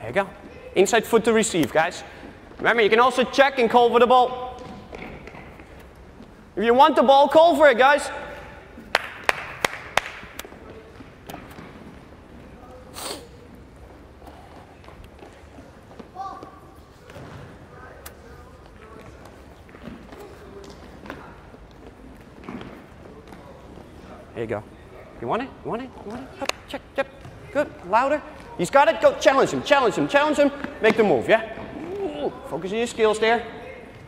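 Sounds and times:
sneaker footsteps: 4.2s - 6.6s
balls thudding on gym floor: 4.3s - 5.9s.

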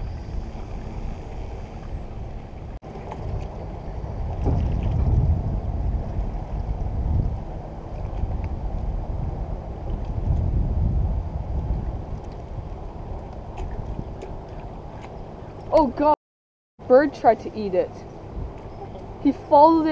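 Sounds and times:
water sloshing: 0.0s - 5.4s, 11.8s - 16.2s
wind rumbling on microphone: 0.0s - 16.2s, 17.7s - 19.9s.

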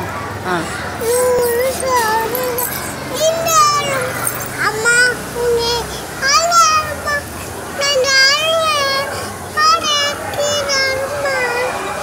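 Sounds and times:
toddler girl singing: 1.0s - 11.8s.

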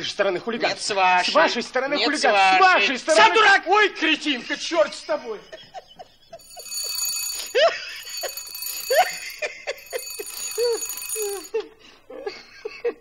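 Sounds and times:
telephone bell ringing: 6.4s - 11.6s.

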